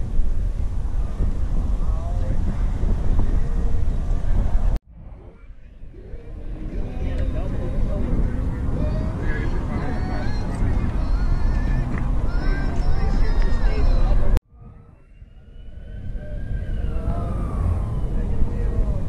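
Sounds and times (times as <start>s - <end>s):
steady low rumble: 0.0s - 19.0s
people talking indistinctly: 5.0s - 14.4s.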